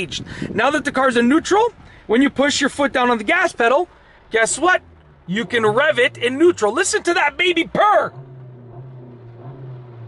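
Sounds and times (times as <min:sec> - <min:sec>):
car engine revving in neutral: 0:03.8 - 0:10.0.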